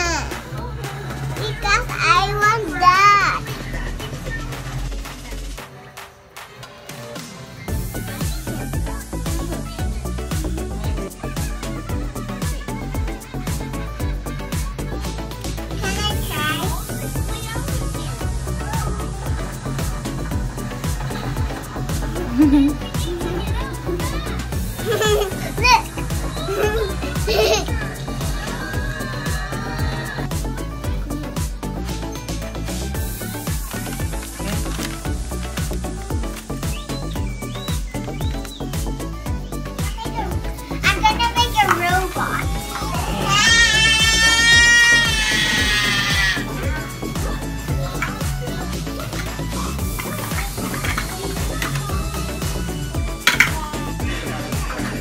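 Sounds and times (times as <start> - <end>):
young children's voices: 0.0 - 4.8, 8.0 - 21.4, 22.0 - 31.4, 36.6 - 55.0
music: 0.0 - 55.0
child squealing: 24.9 - 30.2, 41.5 - 46.8
child calling out sing-song: 39.6 - 46.8.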